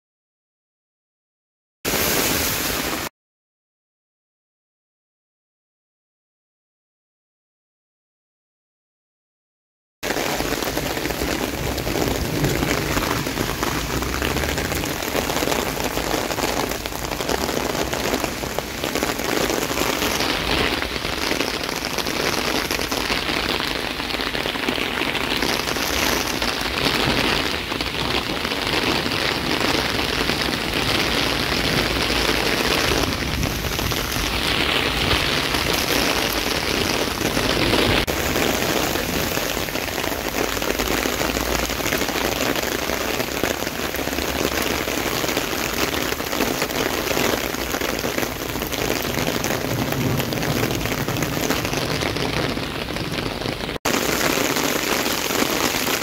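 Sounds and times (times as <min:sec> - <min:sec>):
heavy rain pouring: 0:01.9 - 0:03.1, 0:10.0 - 0:56.0.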